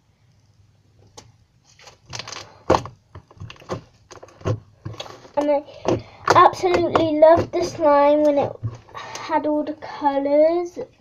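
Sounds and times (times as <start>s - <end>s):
slime squelching and slapping: 1.1s - 9.3s.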